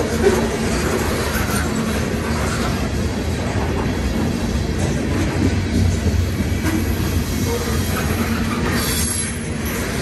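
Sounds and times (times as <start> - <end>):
freight train wheels rumbling: 0.0 - 10.0.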